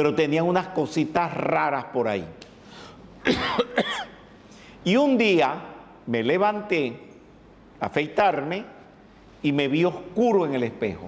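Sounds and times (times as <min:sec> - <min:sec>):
man coughing and clearing throat: 0:03.2 - 0:04.3.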